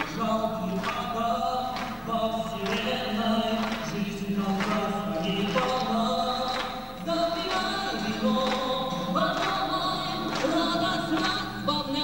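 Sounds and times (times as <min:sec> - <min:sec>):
choir-like voices: 0:00.0 - 0:12.0
musical accompaniment: 0:06.9 - 0:12.0.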